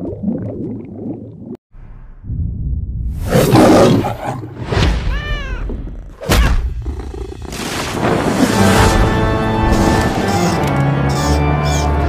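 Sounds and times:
low rumble: 1.8s - 3.3s.

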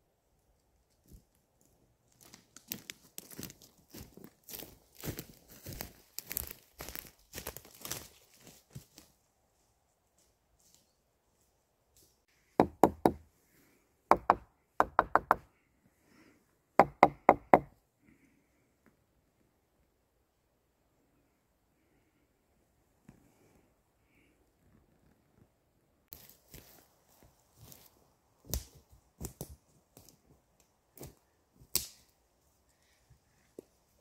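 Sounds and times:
footsteps crunching through leaves: 2.2s - 9.2s, 26.1s - 28.0s.

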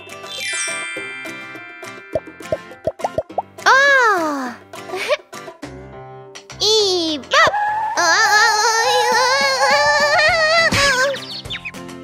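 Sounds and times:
children's background music: 0.0s - 12.0s
cartoon plopping pops: 2.5s - 3.5s.

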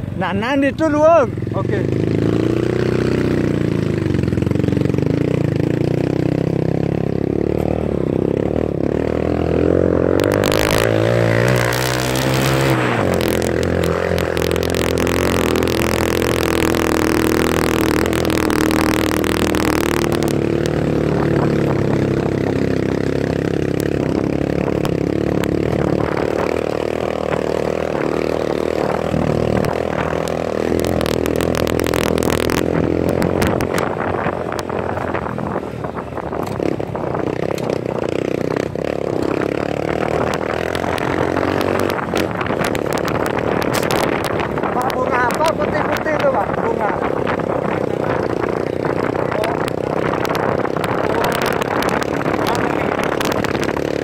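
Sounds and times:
motorcycle engine revving: 0.0s - 54.0s
loud rushing noise: 10.0s - 20.3s.

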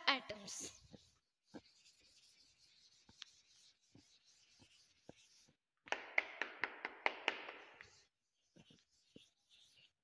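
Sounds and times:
duster scraping chalkboard: 0.3s - 5.6s, 7.6s - 10.0s.

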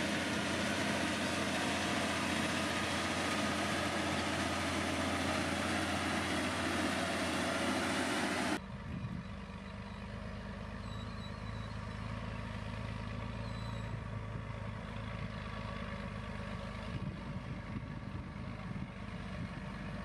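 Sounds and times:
blade working gravel: 0.0s - 8.6s
motor grader diesel engine under load: 0.0s - 20.0s
tanker truck diesel hum: 0.0s - 20.0s.

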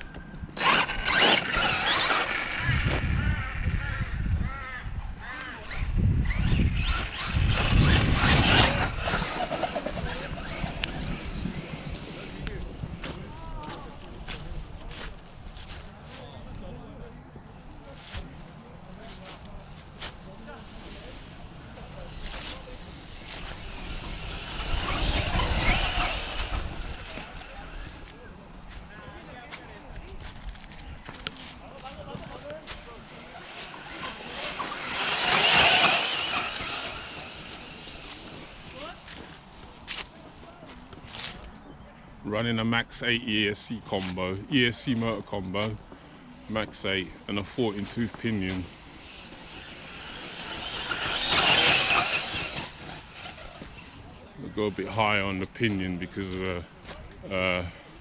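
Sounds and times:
tyres and chassis rumble: 0.0s - 4.8s, 5.5s - 41.6s, 42.3s - 58.0s
electric motor whine: 0.6s - 3.7s, 22.2s - 28.2s, 33.2s - 39.2s, 48.9s - 53.9s.

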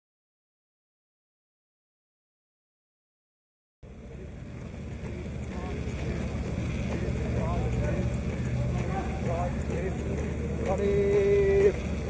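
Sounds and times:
faint distant voices: 3.8s - 12.0s
low steady rumble: 3.8s - 12.0s.

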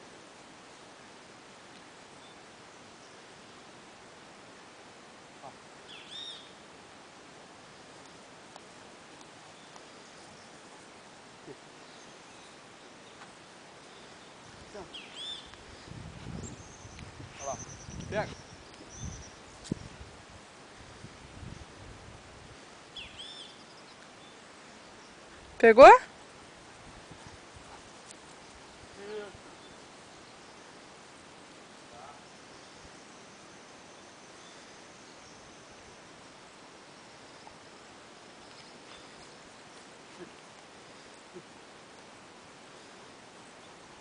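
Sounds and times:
faint outdoor hiss: 0.0s - 44.0s
bird chirping: 5.9s - 6.6s, 13.8s - 19.9s, 22.8s - 25.2s.

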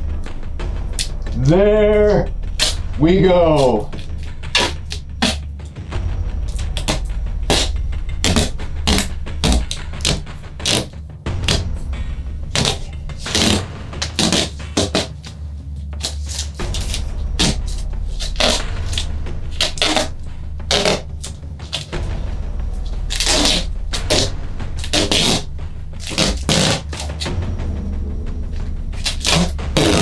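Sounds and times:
steady low hum: 0.0s - 30.0s
duct tape ripping off roll: 2.6s - 2.8s, 3.9s - 5.4s, 6.8s - 11.6s, 12.6s - 15.4s, 16.0s - 22.0s, 23.1s - 27.3s, 29.0s - 30.0s.

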